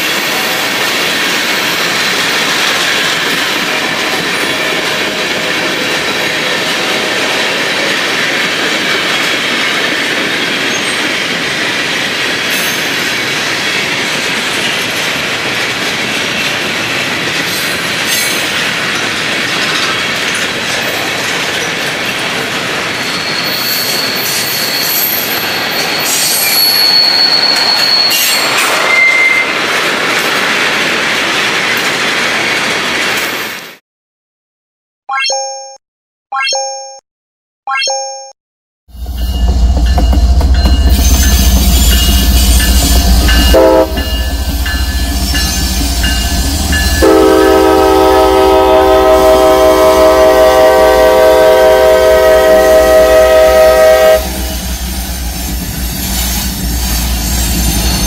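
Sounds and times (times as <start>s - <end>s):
train wheels rumbling on rail: 0.0s - 33.8s, 38.9s - 58.0s
wheel squeal: 23.0s - 29.5s.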